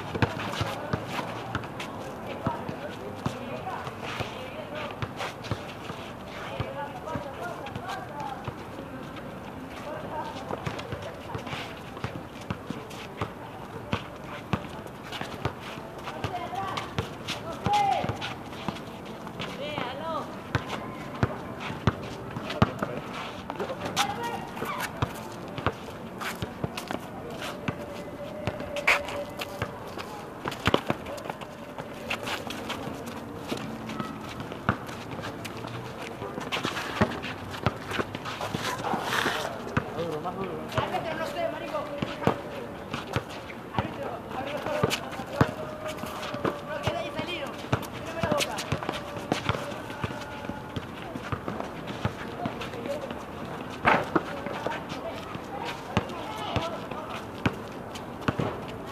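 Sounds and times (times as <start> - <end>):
basketball bouncing on pavement: 0.1 - 1.7, 24.0 - 25.8, 36.2 - 38.2, 43.1 - 53.1, 53.8 - 55.3, 55.9 - 58.6
players shouting and chatting: 0.1 - 58.9.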